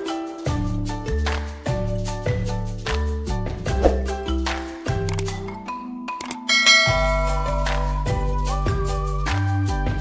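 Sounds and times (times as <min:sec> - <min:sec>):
background music with bass: 0:00.0 - 0:05.8, 0:06.7 - 0:10.0
notification bell ding: 0:06.5 - 0:07.4.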